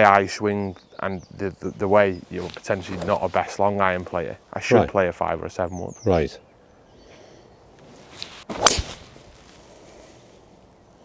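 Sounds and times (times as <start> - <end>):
golf club swishing: 7.8 - 10.1
golf club striking ball: 8.5 - 9.1.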